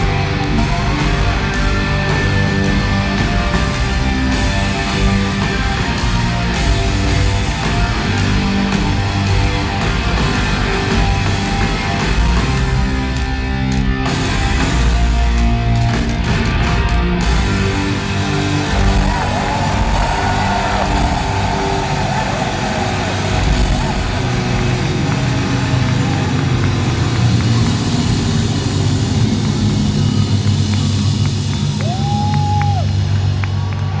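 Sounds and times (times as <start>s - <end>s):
hard rock band playing loud: 0.0s - 33.7s.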